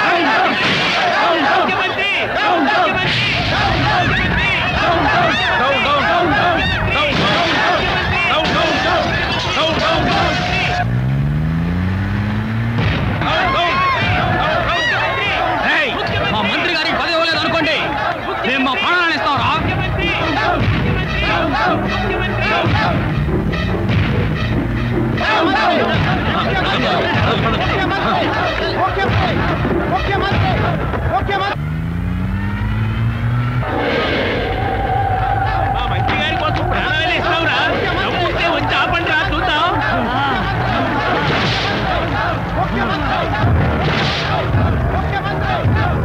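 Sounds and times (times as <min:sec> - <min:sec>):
people shouting: 0:00.0 - 0:11.0, 0:12.4 - 0:46.0
vehicle engine accelerating: 0:07.6 - 0:15.5, 0:19.6 - 0:46.0.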